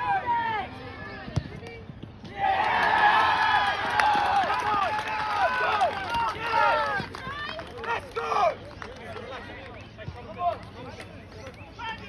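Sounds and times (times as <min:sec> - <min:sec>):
people shouting and cheering: 0:02.3 - 0:08.6.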